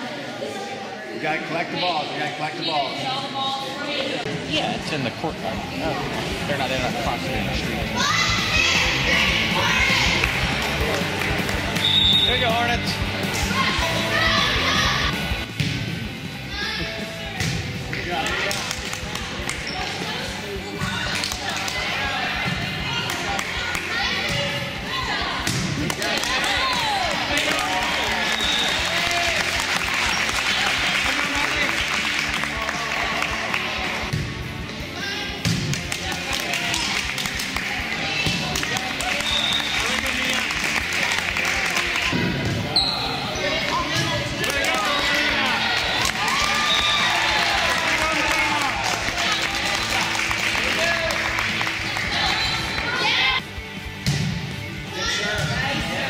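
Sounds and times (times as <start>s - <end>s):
hubbub of voices: 0.0s - 56.0s
volleyball bouncing on gym floor: 35.4s - 36.1s.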